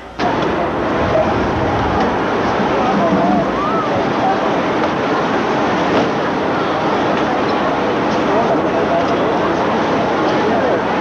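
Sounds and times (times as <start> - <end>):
crowd cheering: 0.0 - 7.4.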